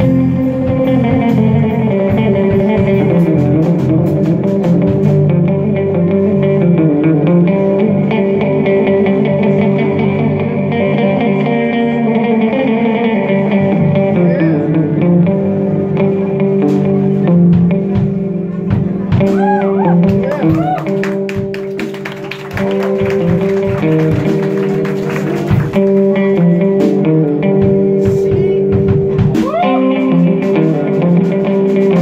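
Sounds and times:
live band with electric guitars: 0.0s - 32.0s.

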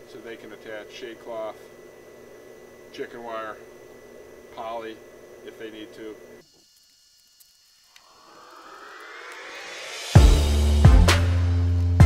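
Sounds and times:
rising whoosh: 8.2s - 10.8s
drum-backed music: 9.5s - 12.0s.

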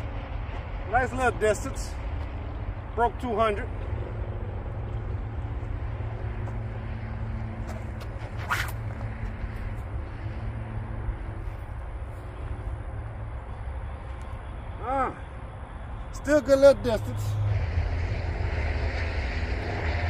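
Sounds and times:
faint engine-like hum: 0.0s - 20.0s
rope whooshing: 7.6s - 9.9s.

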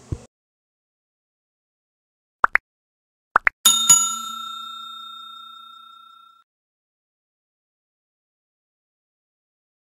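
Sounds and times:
bell ding: 3.7s - 6.4s.

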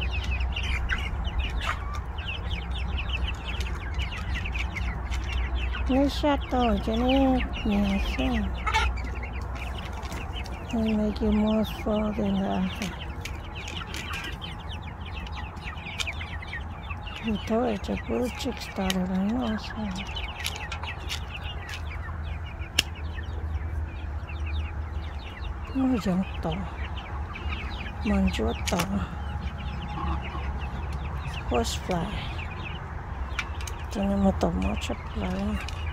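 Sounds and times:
chicken squawk: 0.0s - 5.8s, 8.0s - 10.7s, 26.4s - 31.5s
chicks clucking and chirping: 0.0s - 35.9s
steady low rumble: 0.0s - 35.9s.

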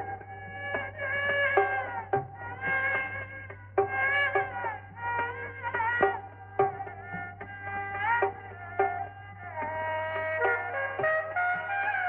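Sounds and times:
plucked string notes: 0.0s - 12.0s.

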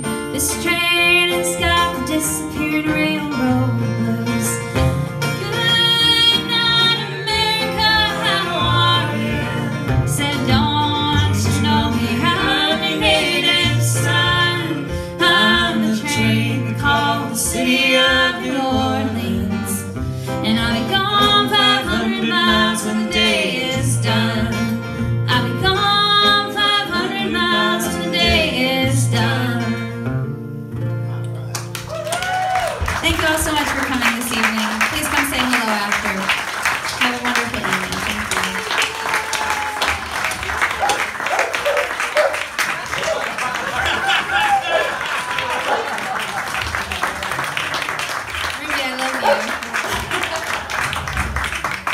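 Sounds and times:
strummed acoustic guitar: 0.0s - 31.8s.

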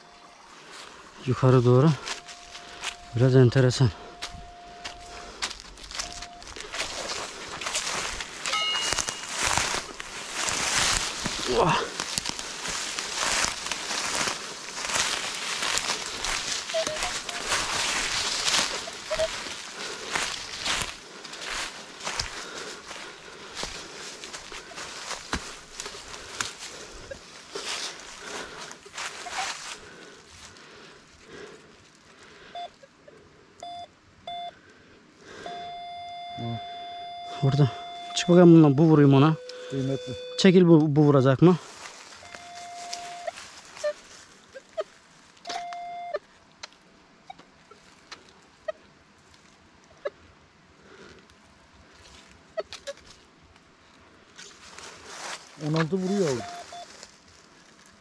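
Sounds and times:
footsteps crunching through dry leaves: 0.2s - 32.1s, 41.3s - 45.4s, 51.8s - 58.0s
metal detector beeps: 1.4s - 10.0s, 16.3s - 19.5s, 32.6s - 32.9s, 33.6s - 34.6s, 35.4s - 41.1s, 42.2s - 44.0s, 45.4s - 46.2s, 55.6s - 56.9s.

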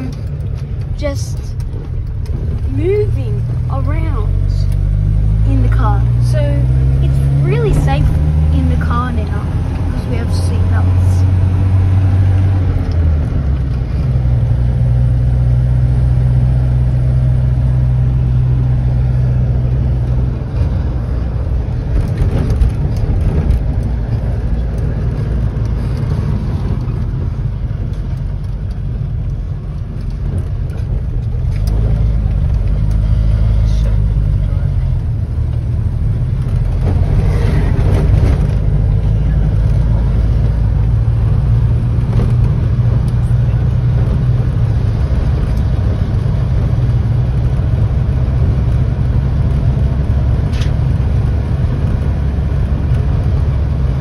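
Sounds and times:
car engine running: 0.0s - 54.0s
road noise: 0.0s - 54.0s.

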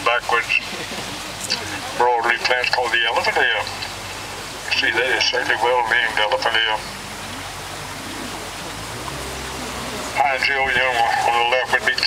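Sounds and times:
boat motor running: 0.0s - 12.0s
water noise: 0.0s - 12.0s
wind: 0.0s - 12.0s.

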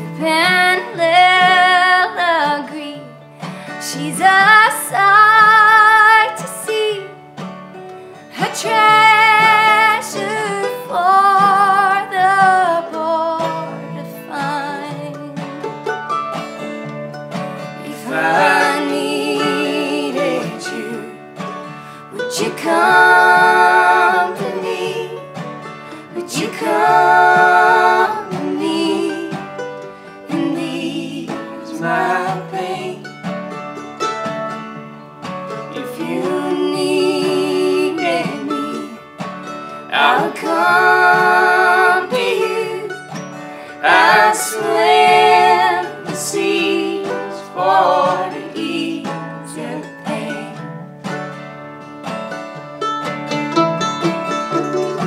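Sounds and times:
man and woman singing: 0.0s - 3.1s, 3.7s - 7.1s, 8.4s - 15.5s, 17.8s - 29.6s, 30.2s - 33.1s, 35.8s - 39.1s, 39.8s - 50.7s
acoustic guitars and mandolin: 0.0s - 55.0s.

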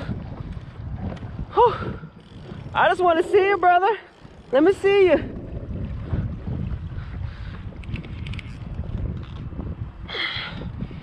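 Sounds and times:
wind buffeting microphone: 0.0s - 11.0s
faint clicks: 7.7s - 9.5s.

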